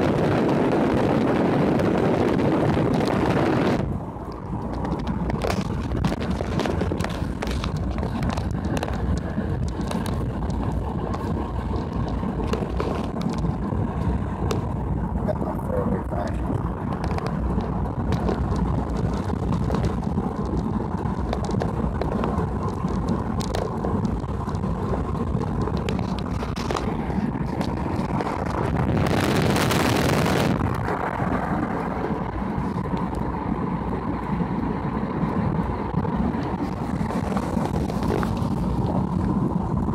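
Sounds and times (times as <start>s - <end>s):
car engine and tyre rumble: 0.0s - 39.9s
wind on microphone: 0.0s - 39.9s.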